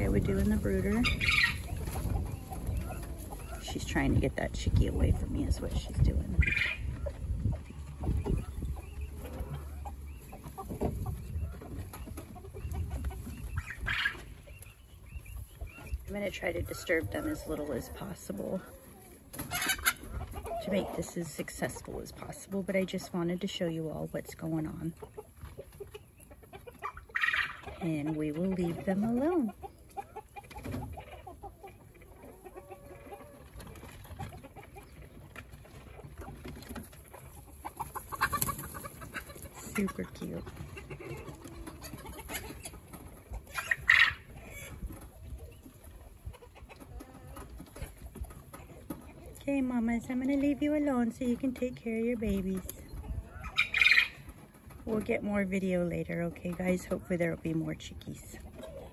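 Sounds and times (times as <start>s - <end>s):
quail hen clucking: 0.0s - 58.9s.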